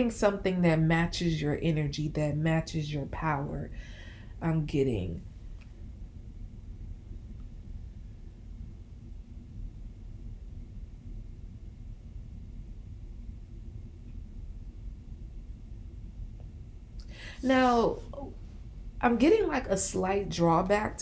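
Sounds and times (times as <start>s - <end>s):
faint steady hum: 0.0s - 21.0s
low room tone rumble: 0.0s - 21.0s.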